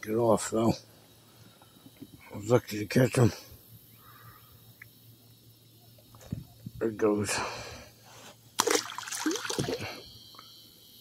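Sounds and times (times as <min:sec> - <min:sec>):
fish splashing into water: 0:08.6 - 0:10.0
water trickling and sloshing: 0:08.6 - 0:10.4.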